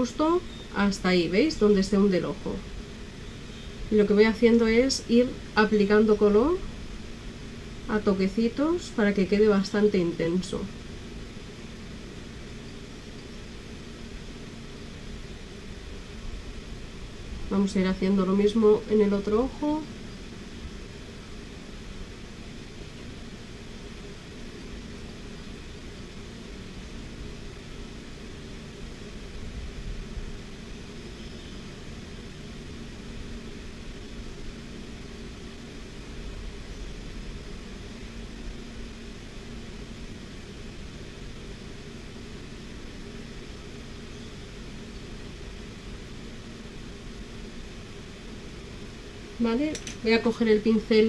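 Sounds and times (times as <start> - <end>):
electric fan humming: 0.0 - 51.0.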